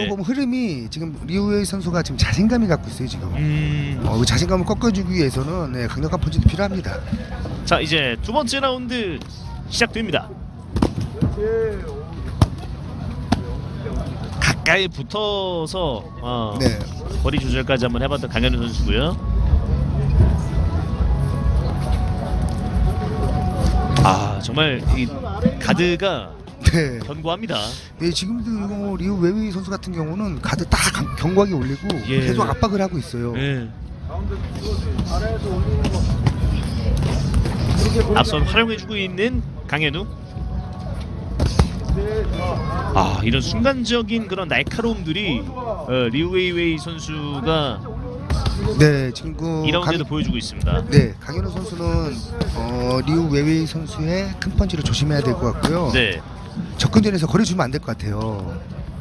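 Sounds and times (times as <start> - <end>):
steady low hum: 0.0 - 30.8
faint voices: 0.0 - 59.0.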